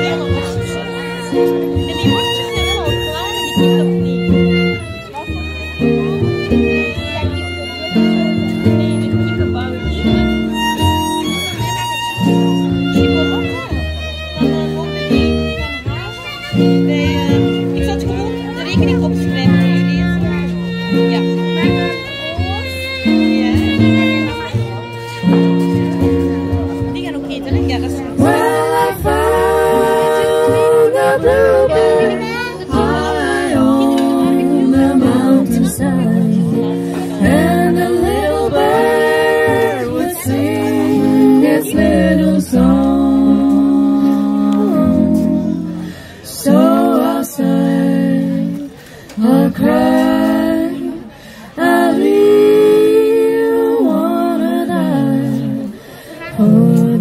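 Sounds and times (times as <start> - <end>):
acoustic guitar: 0.0 - 57.0
fiddle: 0.0 - 57.0
upright double bass: 0.0 - 57.0
women singing together: 27.6 - 57.0.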